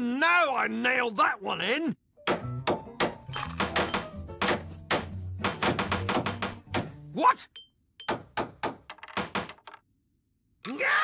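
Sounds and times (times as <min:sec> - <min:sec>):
hammer driving nails into wood: 0:02.2 - 0:07.0
background music: 0:02.2 - 0:07.5.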